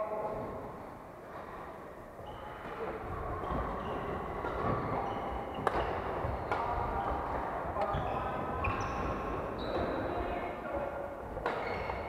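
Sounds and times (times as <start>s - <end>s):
shoes squeaking on wooden floor: 2.2s - 10.8s, 11.4s - 12.0s
racket hitting shuttlecock: 4.4s - 7.9s, 11.3s - 12.0s.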